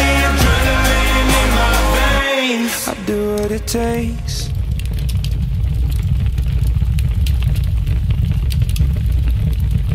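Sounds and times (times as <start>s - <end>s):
fire rumbling and crackling: 3.4s - 9.9s.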